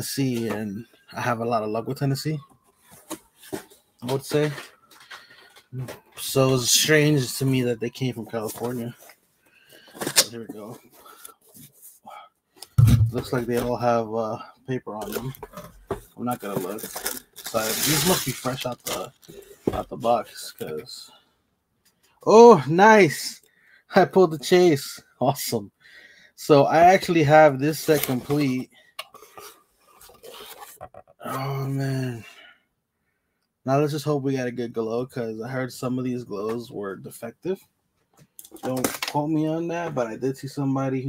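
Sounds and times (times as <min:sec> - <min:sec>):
cardboard box rustling and scraping: 0:16.3 - 0:19.3.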